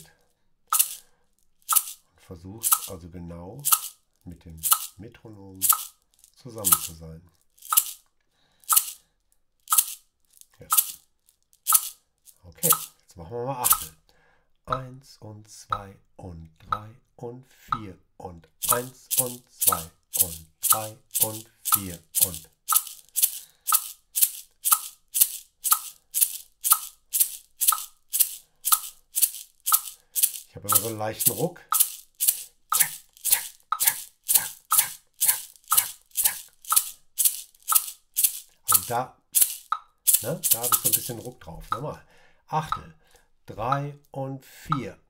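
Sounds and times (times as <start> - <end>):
maraca rattling: 0.7 - 3.0, 3.6 - 9.0, 9.6 - 13.0, 13.6 - 13.9, 18.6 - 41.4
metronome ticking: 0.8 - 1.0, 1.7 - 2.0, 2.6 - 3.0, 4.6 - 5.0, 5.6 - 5.9, 6.6 - 7.0, 8.7 - 9.0, 10.6 - 11.0, 12.6 - 12.9, 13.6 - 13.9, 18.6 - 41.9.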